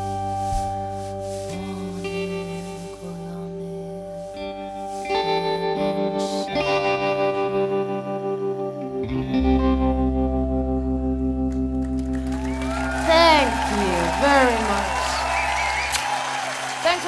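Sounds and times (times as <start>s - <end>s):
electric guitar with effects: 0.0s - 16.2s.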